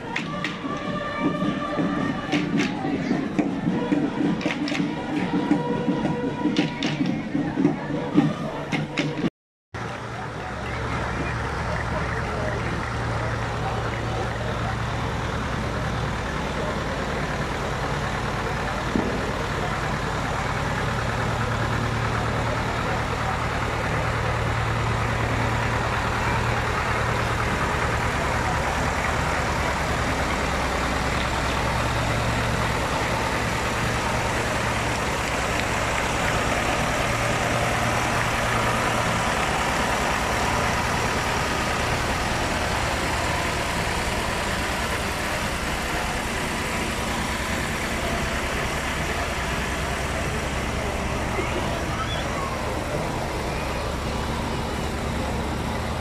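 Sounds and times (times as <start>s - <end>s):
people talking: 0.0s - 56.0s
tractor engine running: 0.0s - 56.0s.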